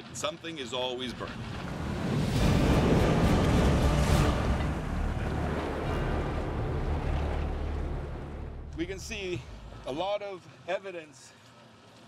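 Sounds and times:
wind: 0:00.0 - 0:12.0
waves: 0:00.1 - 0:10.3
rushing roar of gas flames: 0:00.5 - 0:09.9.

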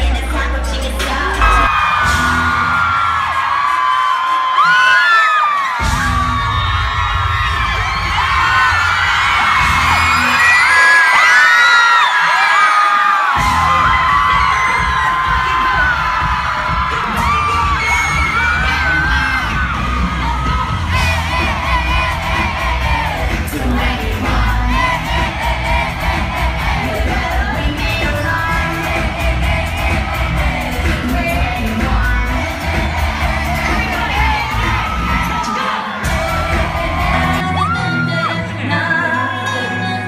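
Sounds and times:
live pop music with heavy bass: 0:00.0 - 0:12.4, 0:13.0 - 0:40.0
fans screaming and whooping: 0:01.2 - 0:40.0.

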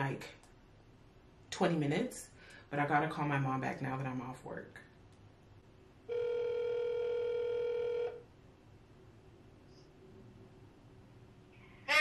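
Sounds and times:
telephone ringback tone: 0:06.1 - 0:08.2.

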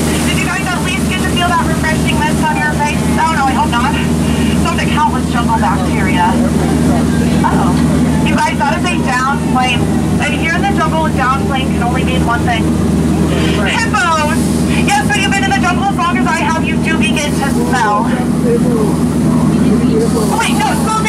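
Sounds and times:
boat motor humming: 0:00.0 - 0:21.0
people talking: 0:00.0 - 0:21.0.

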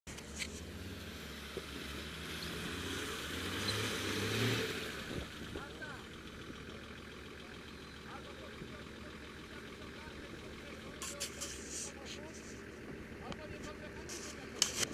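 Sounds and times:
off-road vehicle engine revving: 0:00.1 - 0:14.9
voices: 0:05.1 - 0:14.9.

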